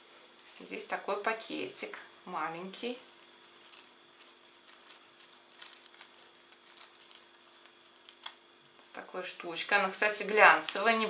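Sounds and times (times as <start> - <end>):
faint steady hum: 0.0 - 11.0
paper tea bag rustling: 2.8 - 8.4.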